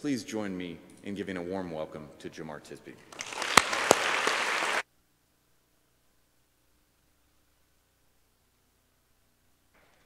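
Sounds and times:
audience applauding: 3.1 - 4.8.

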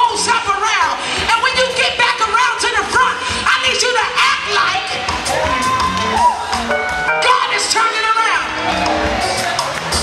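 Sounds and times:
live gospel band music: 0.0 - 10.0
congregation cheering and shouting: 5.0 - 10.0.

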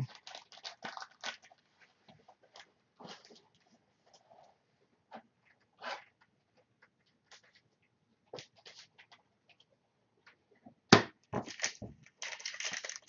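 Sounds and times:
trading card clicks and rustles: 11.4 - 13.0.

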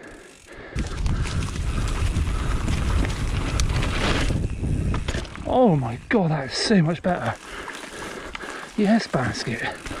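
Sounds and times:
bike tyres on dirt: 0.0 - 10.0
rattling clicks from bike: 0.0 - 10.0
wind buffeting microphone: 0.6 - 6.1.

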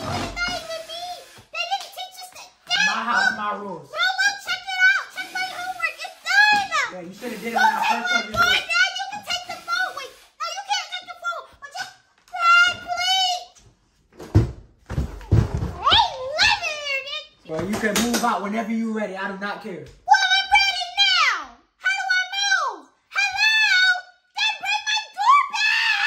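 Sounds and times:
dull thumps and knocks on door: 14.2 - 16.1.

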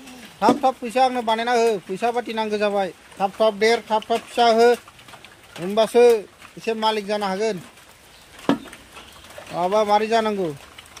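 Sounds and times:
person talking: 0.0 - 4.8, 5.6 - 7.7, 9.5 - 10.6.

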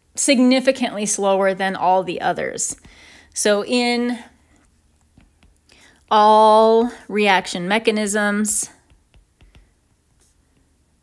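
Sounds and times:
stylus tapping on glass screen: 8.8 - 9.8.

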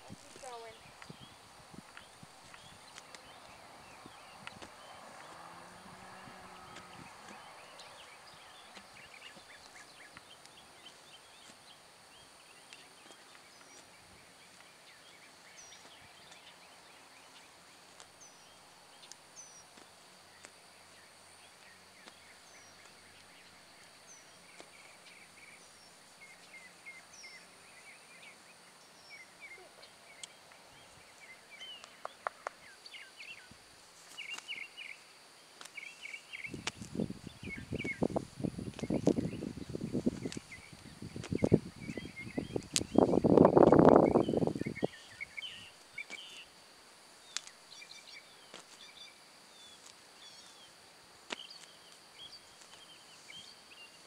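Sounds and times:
steady high hiss: 7.8 - 54.0
bird chirps: 35.7 - 46.5.

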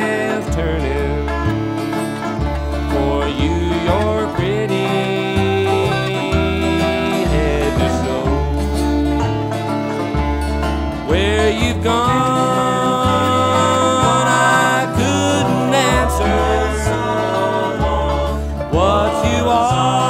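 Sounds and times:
banjo and guitar playing bluegrass: 0.0 - 20.0.

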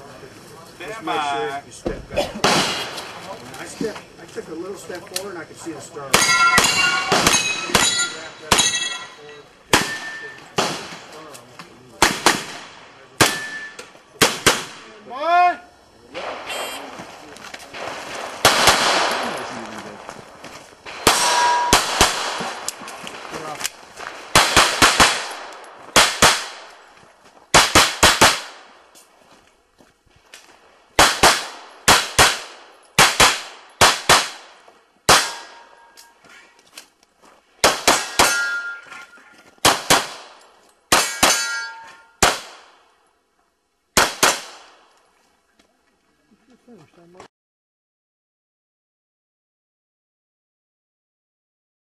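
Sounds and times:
rapid pistol fire: 2.4 - 3.2, 9.7 - 11.1, 12.0 - 13.5, 14.2 - 14.9, 17.7 - 19.6, 20.9 - 26.7, 27.5 - 28.7, 31.0 - 35.6, 37.6 - 38.4, 39.6 - 41.4, 42.2 - 42.8, 44.0 - 44.8
steel targets clanging: 6.0 - 10.6, 13.2 - 14.0, 20.9 - 22.0, 35.2 - 36.2, 37.9 - 39.4, 40.9 - 42.2.

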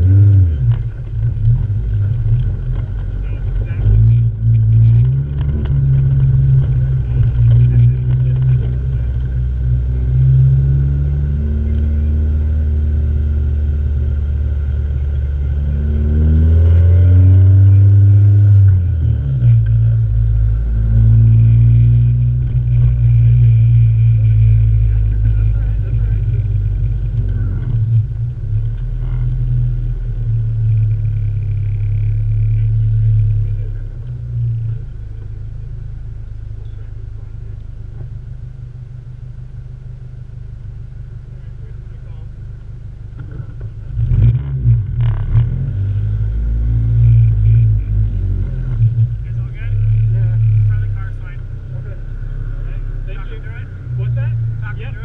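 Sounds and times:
car engine running hard: 0.0 - 55.0.

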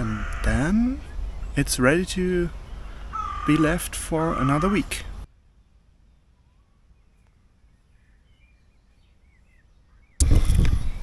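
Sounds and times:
faint bird chirps: 5.4 - 11.0
wind buffeting microphone: 10.1 - 11.0
microphone handling noise: 10.2 - 11.0.

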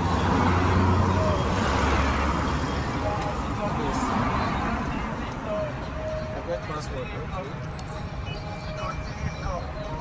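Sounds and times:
cars passing close by: 0.0 - 10.0.

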